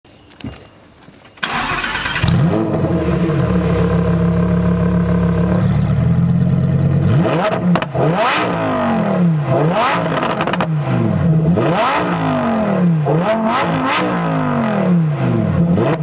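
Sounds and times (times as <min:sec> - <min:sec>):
car engine starting and idling: 0:01.4 - 0:16.0
car engine revving: 0:01.5 - 0:16.0.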